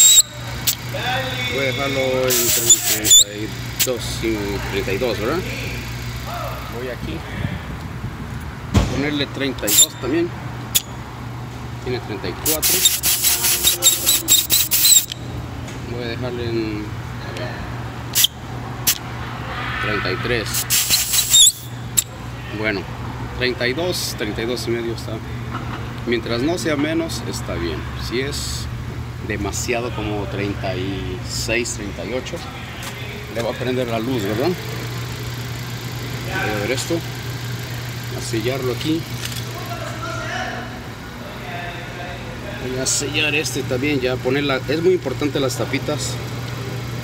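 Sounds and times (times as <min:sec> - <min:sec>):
air hissing from tyre valve: 0:00.0 - 0:01.0, 0:01.9 - 0:04.1, 0:09.7 - 0:10.0, 0:12.5 - 0:15.2, 0:18.2 - 0:19.0, 0:20.4 - 0:22.1
car engine idling: 0:00.0 - 0:07.2, 0:28.7 - 0:41.5, 0:42.1 - 0:47.0.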